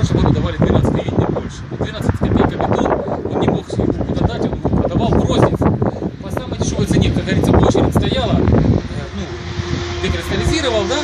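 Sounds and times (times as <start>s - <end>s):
motor vehicle running: 0.0s - 11.0s.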